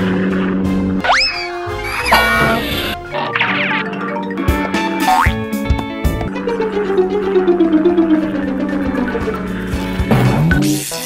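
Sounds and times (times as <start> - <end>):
cartoon falling whistle: 1.0 - 3.8
upbeat background music: 1.0 - 11.0.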